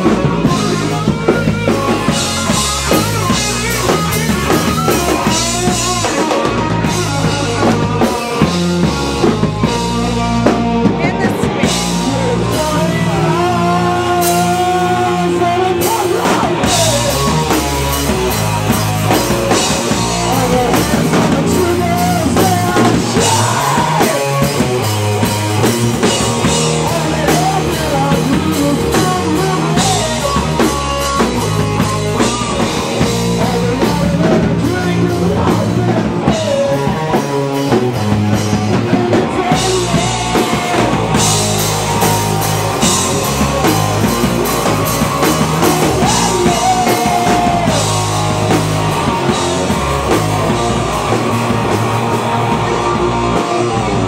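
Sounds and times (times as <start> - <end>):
drum kit: 0.0 - 54.0
electric guitar: 0.0 - 54.0.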